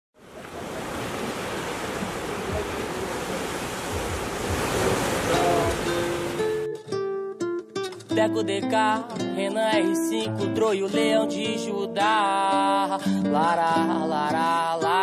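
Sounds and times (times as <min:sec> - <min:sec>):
sea surf washing over rocks: 0:00.2 - 0:06.6
plucked acoustic guitar notes: 0:04.5 - 0:15.0.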